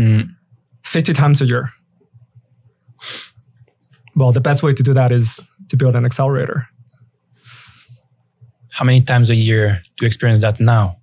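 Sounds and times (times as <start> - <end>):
person breathing noisily: 3.0 - 3.4, 7.3 - 8.0.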